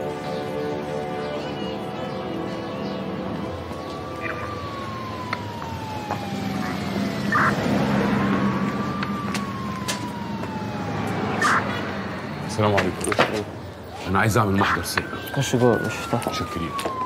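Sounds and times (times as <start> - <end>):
siren wailing: 0.0 - 17.0
street noise: 0.0 - 17.0.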